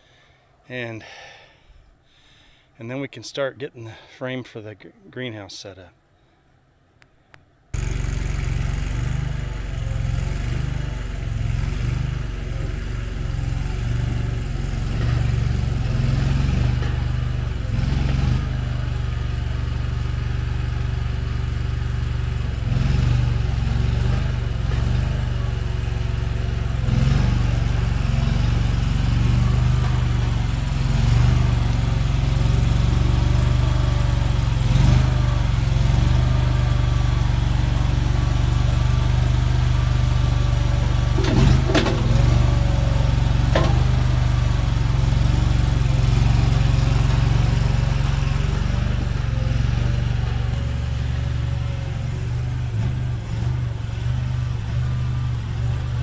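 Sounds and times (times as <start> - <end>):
skid steer engine under load: 7.8 - 56.0
metal clanks: 41.0 - 44.5.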